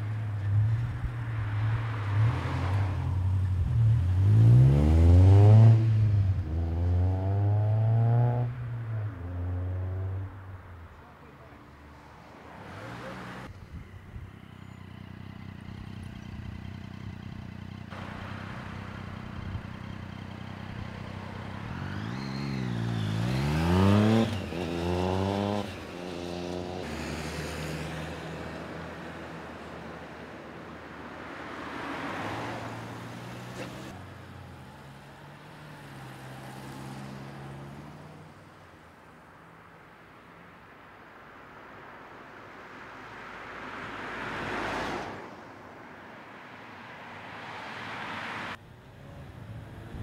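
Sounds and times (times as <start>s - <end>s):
vehicle passing with road noise: 0.0s - 50.0s
car accelerating away: 3.6s - 10.3s, 21.6s - 28.1s.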